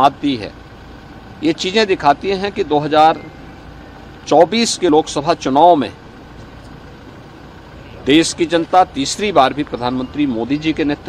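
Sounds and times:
low engine-like rumble with hiss: 0.0 - 11.0.

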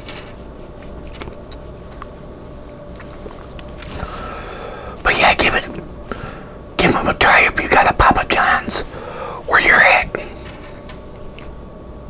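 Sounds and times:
man whispering: 5.0 - 5.9, 6.8 - 10.5.

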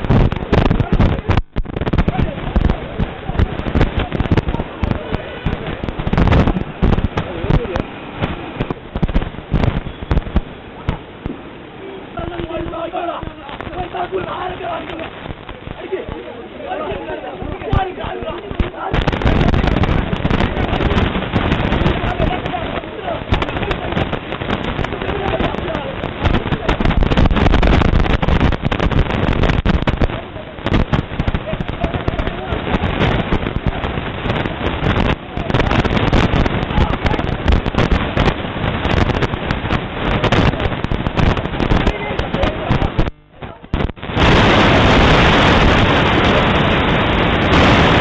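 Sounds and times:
sharp knocks and crackles: 0.0 - 11.4
men shouting: 12.2 - 15.1.

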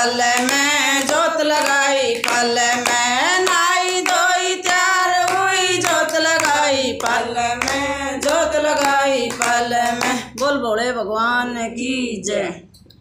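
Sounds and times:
rhythmic hand claps: 0.0 - 10.6
women singing devotional song: 0.0 - 12.8.

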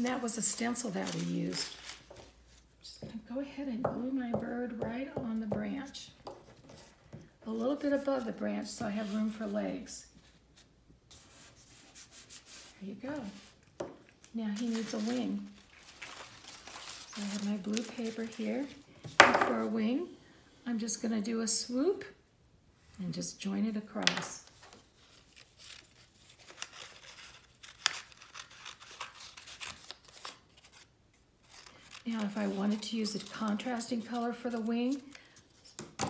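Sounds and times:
scissors snipping paper: 26.4 - 30.4.

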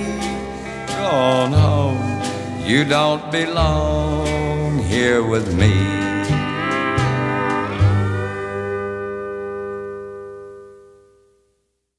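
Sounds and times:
country band held chord: 0.0 - 11.0.

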